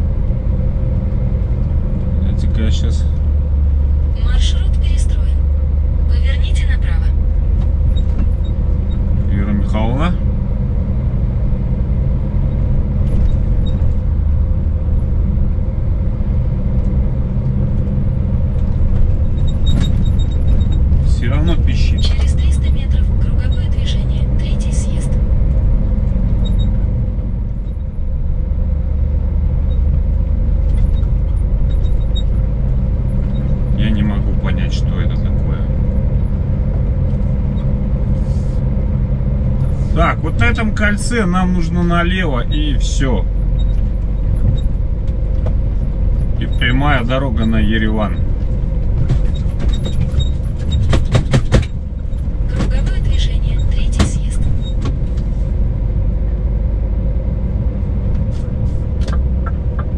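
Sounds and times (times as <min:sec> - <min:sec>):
truck diesel engine rumbling: 0:00.0 - 0:59.9.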